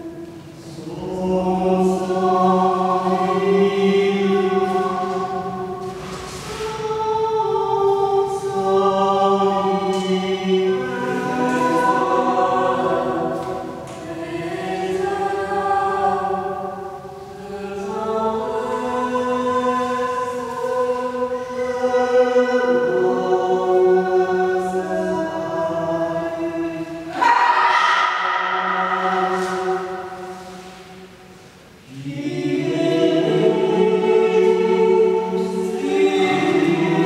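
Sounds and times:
group singing in harmony: 0.0 - 37.0.

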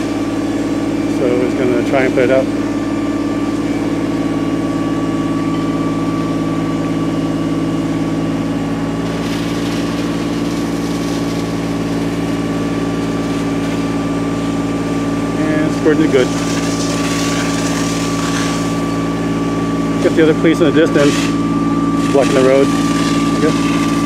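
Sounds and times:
fire engine running: 0.0 - 24.0
pump whine: 0.0 - 24.0.

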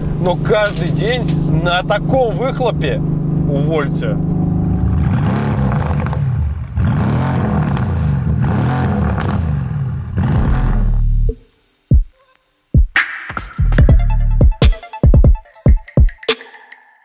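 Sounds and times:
car engine accelerating hard: 0.0 - 11.2.

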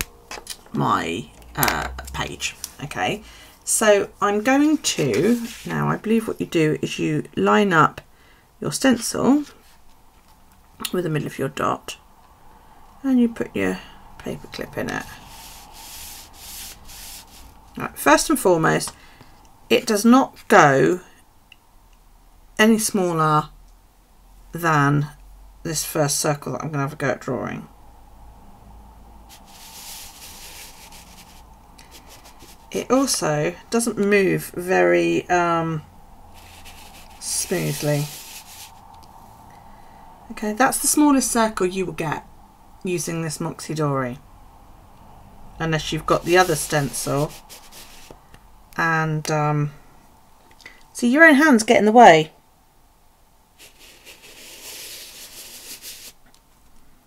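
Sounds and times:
pen scratching on paper: 4.4 - 5.8, 15.1 - 17.6, 29.4 - 32.8, 36.4 - 38.7, 46.1 - 48.2, 53.6 - 56.2.

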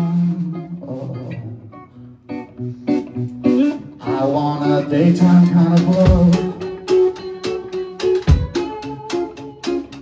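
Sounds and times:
bass guitar: 0.0 - 10.0
electric guitar: 0.0 - 10.0
live rock band playing: 0.0 - 10.0.

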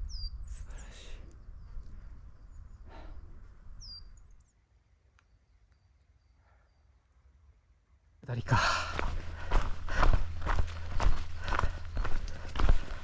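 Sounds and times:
wind rumble on microphone: 0.0 - 4.4
heavy breathing: 2.8 - 3.5, 8.5 - 13.0
footsteps on a trail: 8.4 - 13.0.

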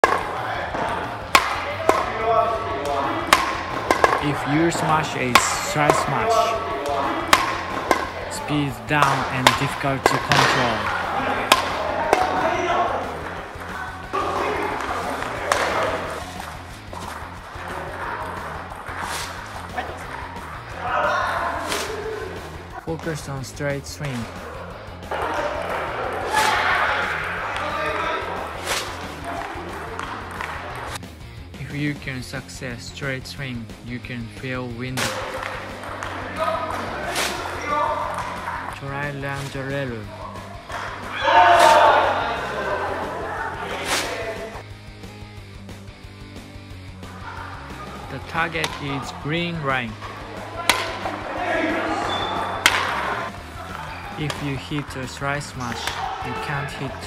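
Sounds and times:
racket striking shuttlecock: 0.0 - 2.2, 2.8 - 8.3, 9.0 - 20.1, 35.0 - 38.5, 50.0 - 51.2, 52.0 - 54.4, 55.8 - 56.2.

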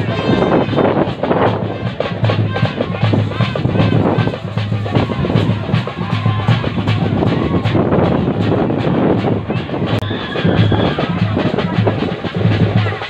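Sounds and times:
loud music with pounding drums: 0.0 - 13.0.

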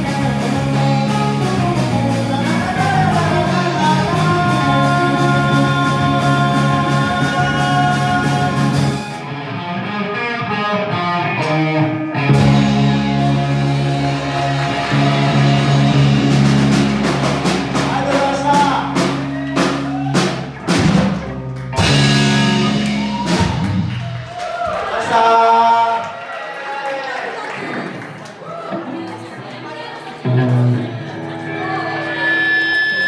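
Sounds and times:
live rock band playing: 0.0 - 24.6, 30.1 - 33.0
drum hits: 12.4 - 24.1.

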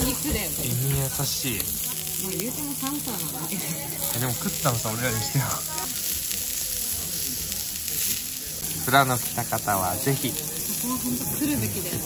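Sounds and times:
meat sizzling on a grill pan: 0.0 - 12.0.

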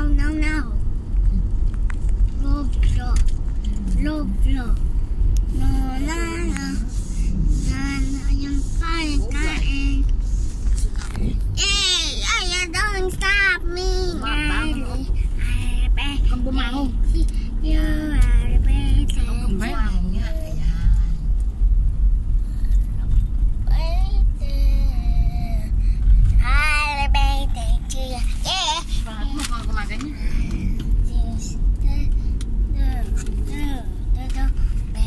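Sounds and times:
car cabin rumble: 0.0 - 35.0.

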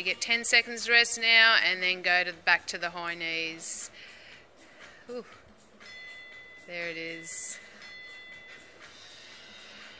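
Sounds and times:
high electronic bell tone: 5.8 - 9.9.

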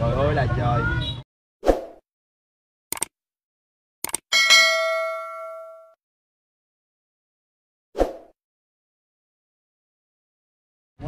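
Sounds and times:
notification bell ding: 4.3 - 6.0.

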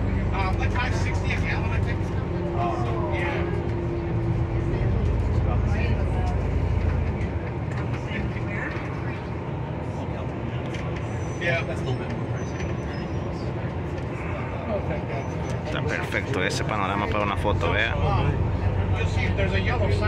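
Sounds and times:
faint voices: 0.0 - 20.0
vehicle engine rumble: 0.0 - 20.0.

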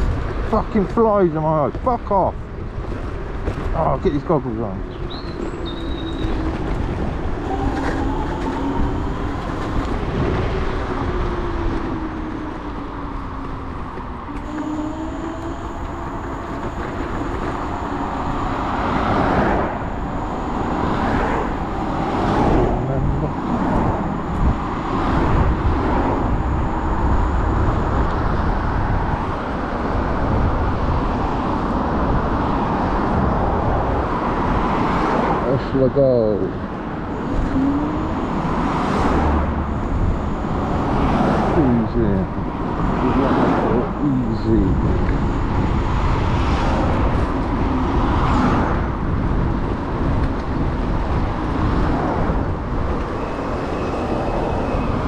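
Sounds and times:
scooter road rumble: 0.0 - 55.0
cars passing whoosh: 2.4 - 55.0
faint gliding tone: 4.7 - 29.4, 37.0 - 48.7, 52.8 - 55.0
wind rush: 4.7 - 35.5, 36.5 - 55.0.

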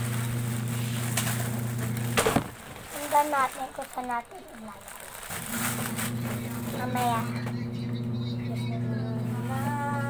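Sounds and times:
plastic bag crinkling: 0.0 - 7.5
steady low hum: 5.3 - 10.0.

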